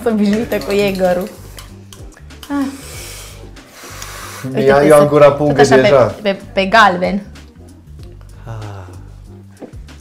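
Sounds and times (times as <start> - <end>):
soft breathy hiss: 2.6 - 4.6.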